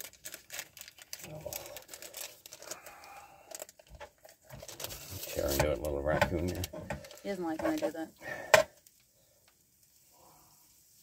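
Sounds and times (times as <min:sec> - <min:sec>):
food packaging crinkling: 0:00.0 - 0:08.0.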